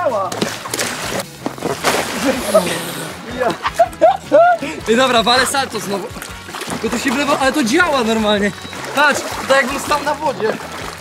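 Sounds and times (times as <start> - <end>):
water sloshing: 0.0 - 11.0
body splashing into pool: 0.3 - 3.4.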